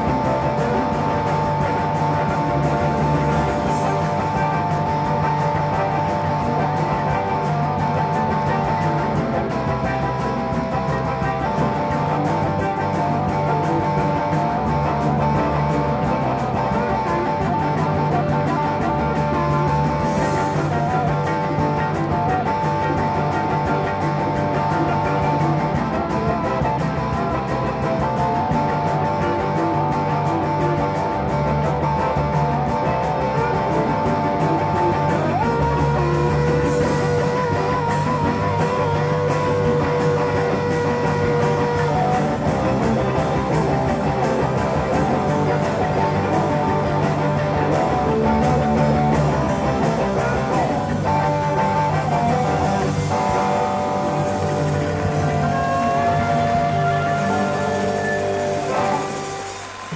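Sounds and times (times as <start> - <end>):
held lead guitar notes: 0.0 - 59.9
rock band playing: 0.0 - 59.9.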